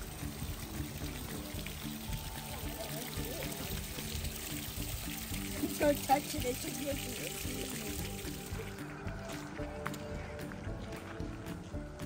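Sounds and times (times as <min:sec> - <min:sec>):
water trickling and splashing on rock: 0:00.0 - 0:10.2
faint background music: 0:00.0 - 0:12.0.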